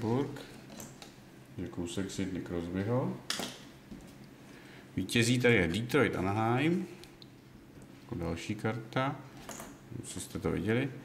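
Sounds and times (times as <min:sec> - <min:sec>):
man speaking: 0:05.0 - 0:07.0, 0:09.9 - 0:11.0.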